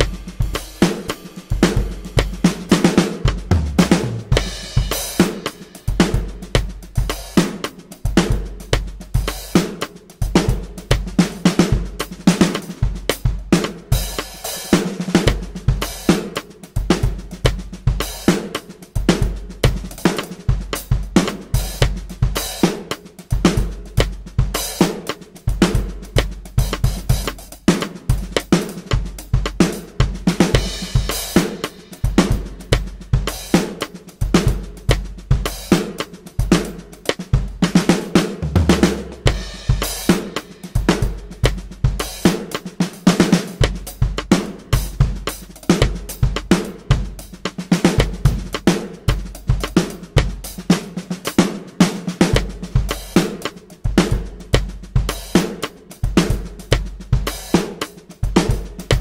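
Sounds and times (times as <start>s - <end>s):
electronic drum kit funk groove: 0.0s - 59.0s.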